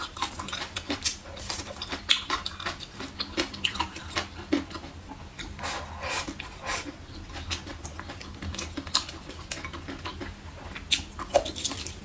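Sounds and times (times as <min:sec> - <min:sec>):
wet mouth clicks and chewing: 0:00.0 - 0:12.0.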